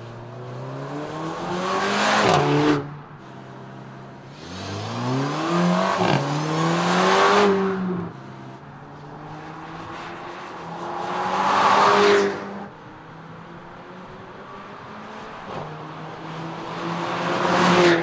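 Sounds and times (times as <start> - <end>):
car engine accelerating hard: 4.3 - 8.6.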